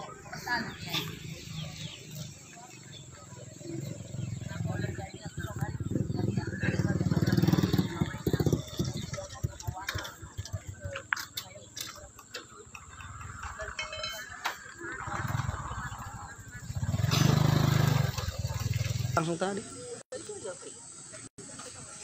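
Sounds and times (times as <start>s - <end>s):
people talking in background: 0.0s - 22.0s.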